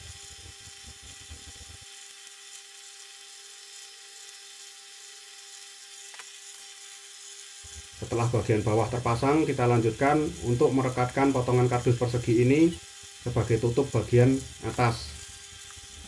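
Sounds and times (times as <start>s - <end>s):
constant hiss: 7.7s - 16.0s.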